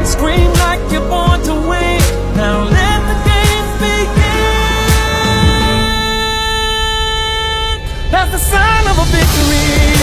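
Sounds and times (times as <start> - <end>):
low pulsing beat: 0.0 - 6.8.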